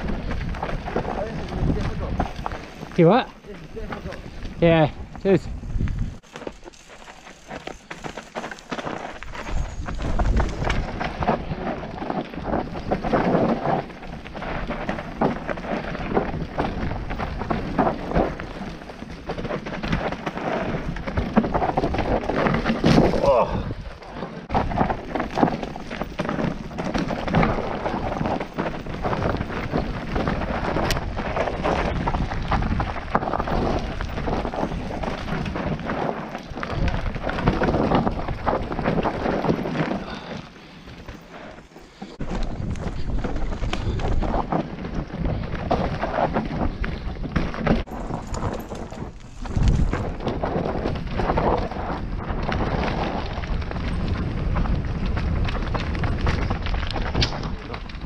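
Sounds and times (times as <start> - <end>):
wind rumble on microphone: 0.0 - 6.2, 8.8 - 40.3, 42.1 - 58.0
bike clattering over rough ground: 0.0 - 58.0
bike tyres skidding over dirt: 0.0 - 58.0.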